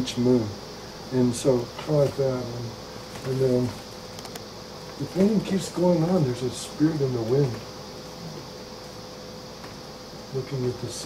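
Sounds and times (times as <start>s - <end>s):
faint constant hum: 0.0s - 11.0s
steady hiss: 0.0s - 11.0s.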